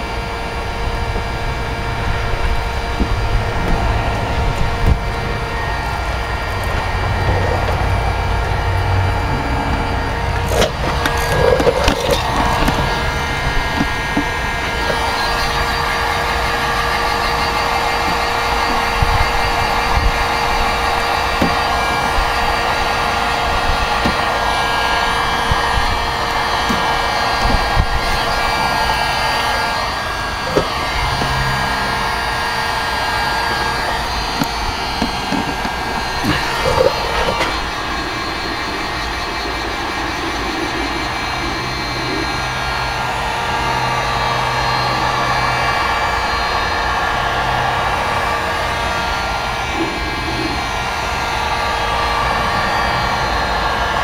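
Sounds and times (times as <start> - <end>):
heat gun fan whining: 0.0 - 54.0.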